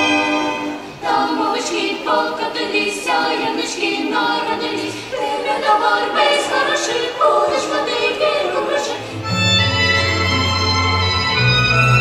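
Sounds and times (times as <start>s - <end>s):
youth choir singing a cappella: 0.0s - 9.3s.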